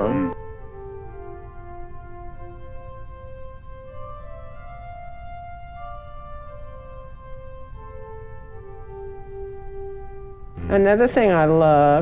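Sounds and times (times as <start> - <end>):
pipe organ soft held chords: 0.0 - 12.0.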